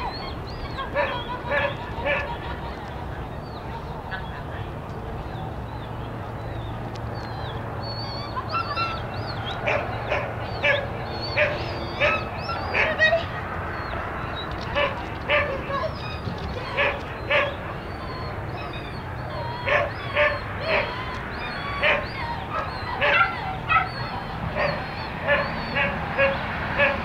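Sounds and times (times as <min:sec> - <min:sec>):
dog barking: 0:01.0 - 0:02.3, 0:09.6 - 0:13.2, 0:16.7 - 0:17.7, 0:19.4 - 0:20.9, 0:21.8 - 0:27.0.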